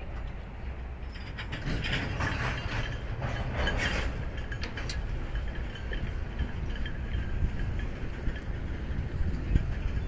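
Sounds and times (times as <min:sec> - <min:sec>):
freight train rumbling: 0:00.0 - 0:10.0
metallic clicking and clanking: 0:01.1 - 0:06.2.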